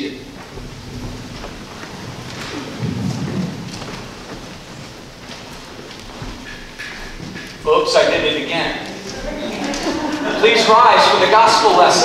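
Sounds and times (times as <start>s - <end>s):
low rumble: 0.0s - 6.4s
congregation shuffling and rustling: 0.0s - 12.0s
wooden pews knocking and creaking: 0.0s - 12.0s.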